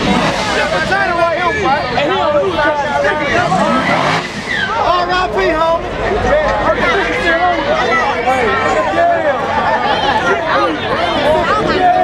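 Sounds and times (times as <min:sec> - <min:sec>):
drag car engine revving: 0:00.0 - 0:01.9, 0:02.6 - 0:05.4.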